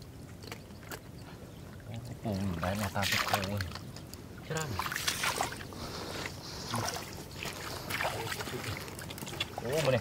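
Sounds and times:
shallow water sloshing: 0:00.5 - 0:10.0.

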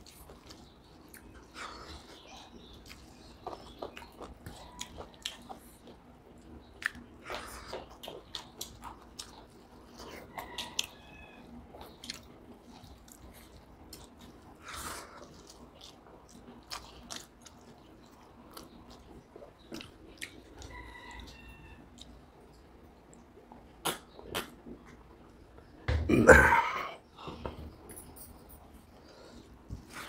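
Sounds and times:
chewing with wet smacks: 0:00.0 - 0:11.0, 0:11.6 - 0:25.7
mouth clicks: 0:23.8 - 0:24.9.

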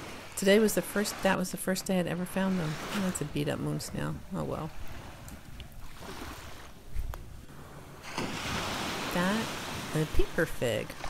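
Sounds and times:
surf washing: 0:00.0 - 0:11.0.

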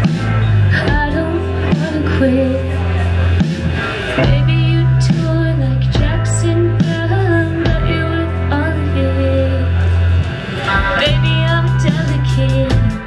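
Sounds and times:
drums: 0:00.0 - 0:13.0
electric guitars: 0:00.0 - 0:13.0
woman singing: 0:00.7 - 0:03.0, 0:04.2 - 0:09.9, 0:11.0 - 0:13.0.

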